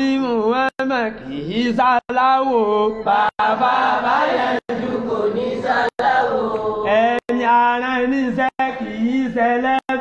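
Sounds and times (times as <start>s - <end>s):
man chanting: 0.0s - 3.4s, 6.8s - 10.0s.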